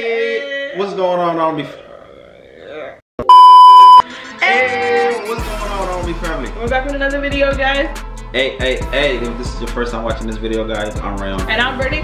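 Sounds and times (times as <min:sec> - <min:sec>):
electronic bleep tone: 0:03.2 - 0:04.0.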